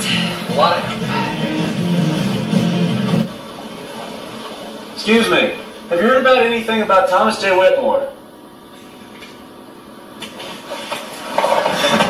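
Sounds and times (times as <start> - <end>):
music: 0.0 - 3.3.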